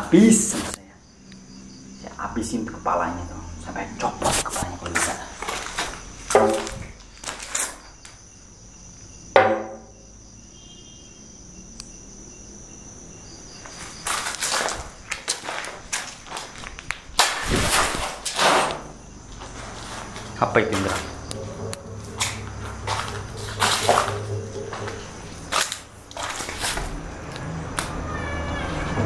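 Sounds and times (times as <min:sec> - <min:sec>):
crickets chirring: 0:00.0 - 0:29.0
footsteps scuffing on concrete: 0:04.3 - 0:08.2, 0:13.5 - 0:18.3, 0:19.2 - 0:28.0.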